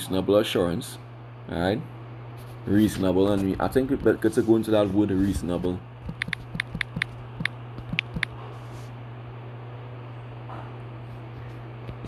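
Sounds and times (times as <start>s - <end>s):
steady low hum: 0.0s - 12.0s
smartphone keyboard taps: 6.0s - 8.3s.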